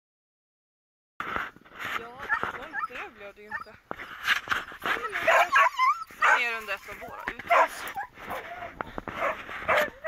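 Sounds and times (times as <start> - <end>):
scuffing and rustling: 1.4 - 10.0
dog whining: 4.9 - 6.5.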